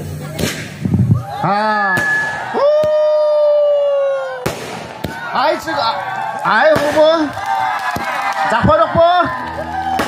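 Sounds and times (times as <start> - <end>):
firework crack: 0.0 - 5.7, 6.5 - 8.5, 9.8 - 10.0
spectator cheering woo: 1.1 - 4.5, 5.1 - 10.0.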